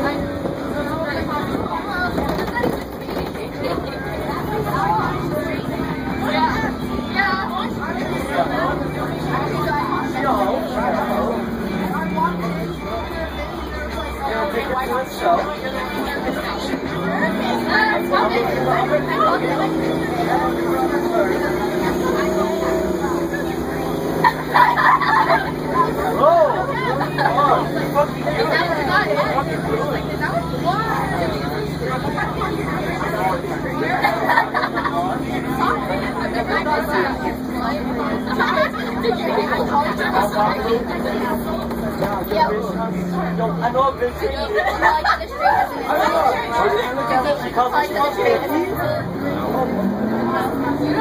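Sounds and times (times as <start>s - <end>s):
bus engine hum: 0.0s - 51.0s
young passengers chattering: 0.0s - 51.0s.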